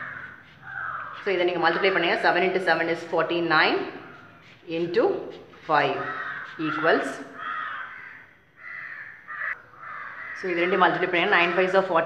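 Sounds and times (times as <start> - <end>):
crow cawing: 0.0 - 1.2, 5.9 - 11.9.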